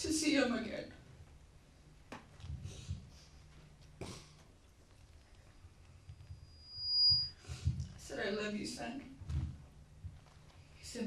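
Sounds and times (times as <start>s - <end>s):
high steady whistling tone: 6.1s - 7.5s.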